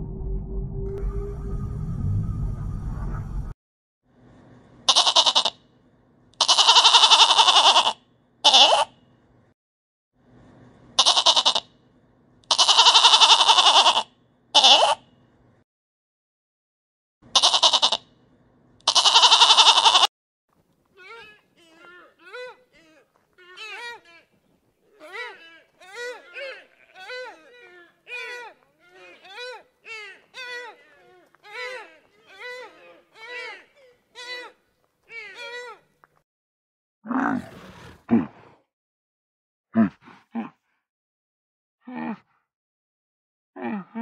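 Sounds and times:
goat kid bleating: 4.9 - 5.6, 6.4 - 8.9, 11.0 - 11.6, 12.5 - 14.0, 14.6 - 15.0, 17.3 - 18.0, 18.8 - 20.1, 25.0 - 29.6.

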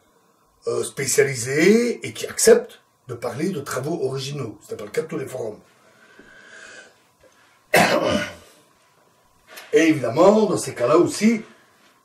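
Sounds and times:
man coughing: 7.7 - 8.5.

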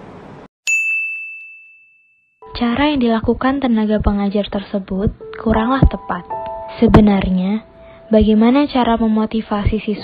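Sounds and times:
bright bell-like ding: 0.7 - 2.3.

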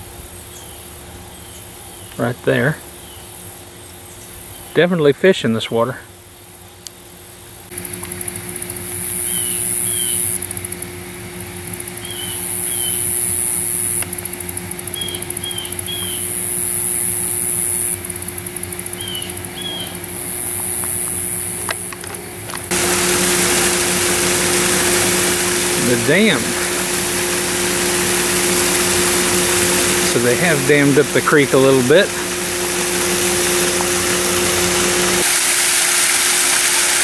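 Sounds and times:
high pulsing insect chorus: 5.9 - 35.2
steady low hum: 6.0 - 35.3.

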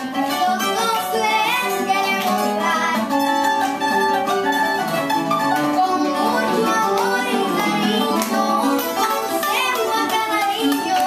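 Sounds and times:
person singing: 0.0 - 4.0, 5.4 - 11.0
acoustic guitar: 0.0 - 11.0.

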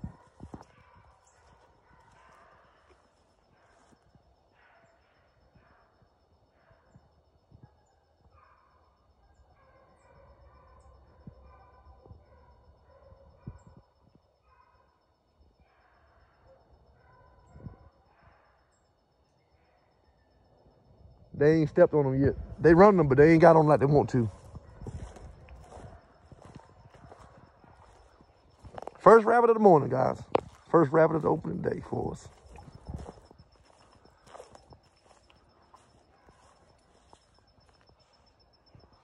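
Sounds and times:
distant dogs baying: 0.0 - 39.0
faint steady high tone: 0.0 - 39.0.

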